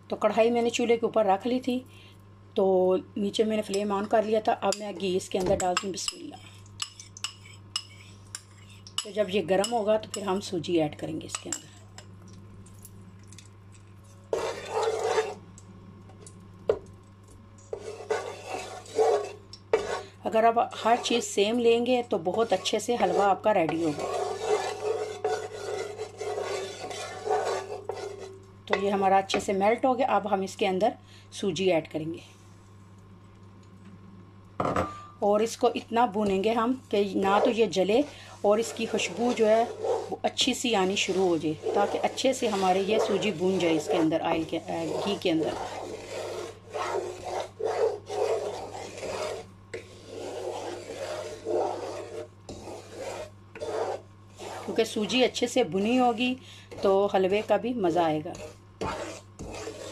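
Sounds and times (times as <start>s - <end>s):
wooden spatula scraping a pan: 14.3s - 15.4s, 17.7s - 20.1s, 20.7s - 21.3s, 22.2s - 28.8s, 36.3s - 59.9s.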